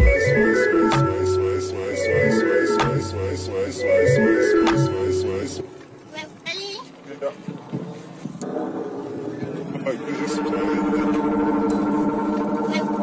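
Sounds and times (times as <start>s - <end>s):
sampled voice fragments: 0.0s - 5.7s, 9.8s - 11.2s
sustained droning chord: 9.3s - 13.0s.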